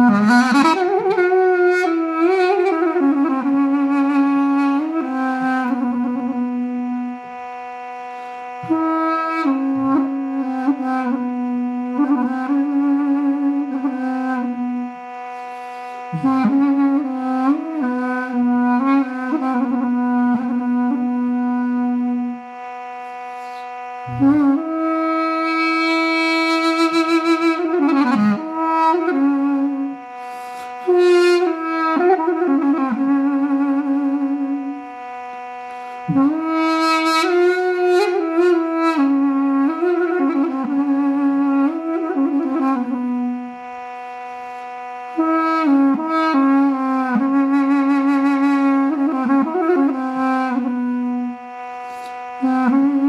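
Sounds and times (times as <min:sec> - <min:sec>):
duduk long low note: 0:00.0 - 0:53.0
steady drone: 0:00.0 - 0:53.0.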